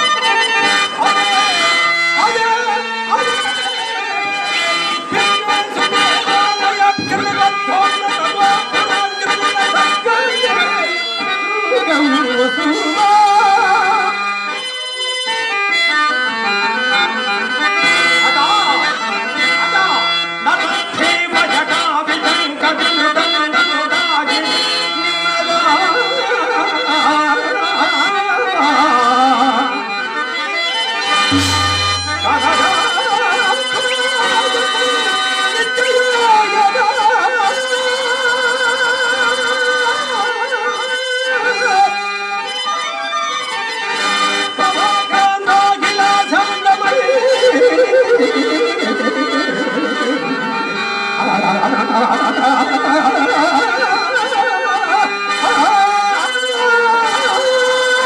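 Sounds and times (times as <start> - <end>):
harmonium playing: 0.0 - 58.0
man singing ornamented verse: 5.1 - 10.4.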